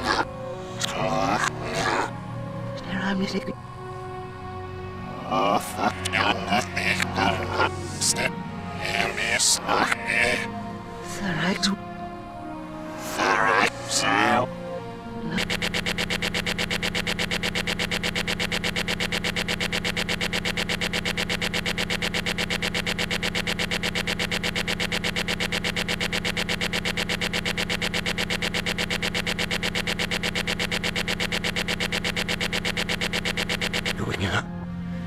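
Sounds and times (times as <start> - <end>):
looped buzzing stutter: 0.0 - 2.2, 5.7 - 11.7, 13.1 - 14.6, 15.2 - 34.5.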